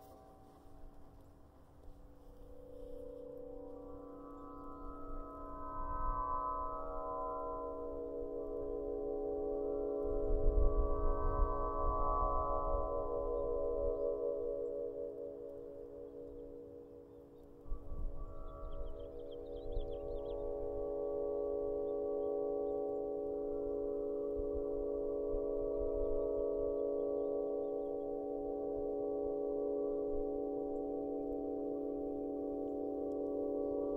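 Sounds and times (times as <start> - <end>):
wind-played harp humming chord: 0.0 - 33.9
wind rumble on microphone: 9.7 - 14.8, 17.6 - 21.9.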